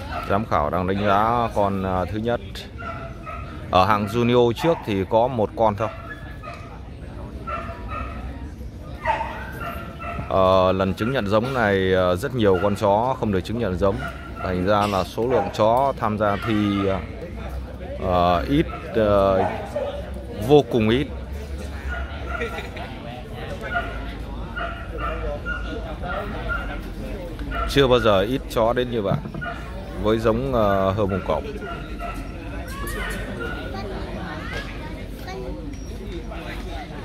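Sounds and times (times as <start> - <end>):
murmur of crowd chatter: 0.0 - 37.0.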